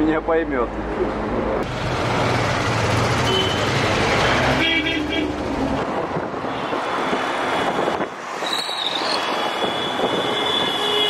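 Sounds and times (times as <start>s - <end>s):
road and engine noise: 0.0s - 11.0s
vehicle horn: 3.2s - 3.8s, 4.5s - 5.4s, 9.6s - 11.0s.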